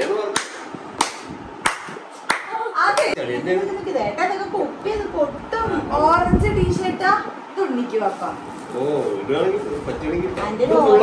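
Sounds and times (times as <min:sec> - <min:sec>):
hand claps: 0:00.0 - 0:03.2
people talking: 0:02.5 - 0:11.0.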